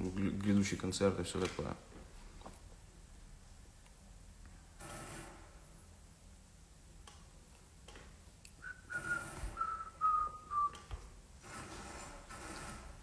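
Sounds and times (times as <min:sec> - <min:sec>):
person whistling: 0:08.6 - 0:10.9.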